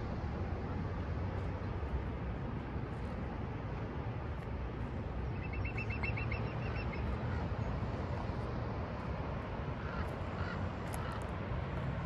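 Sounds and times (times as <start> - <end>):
distant surf: 0.0 - 12.0
wind: 0.0 - 12.0.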